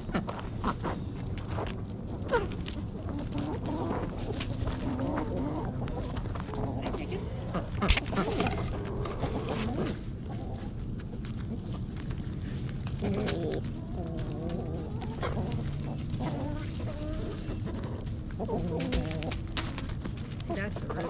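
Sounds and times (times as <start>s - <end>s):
hens clucking: 0.0s - 21.0s
hens pecking at food: 0.0s - 21.0s.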